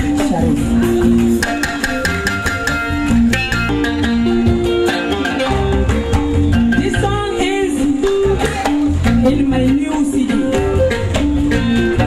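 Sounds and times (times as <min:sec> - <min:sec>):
bass: 0:00.0 - 0:12.0
drums: 0:00.0 - 0:12.0
plucked guitar lines: 0:00.0 - 0:12.0.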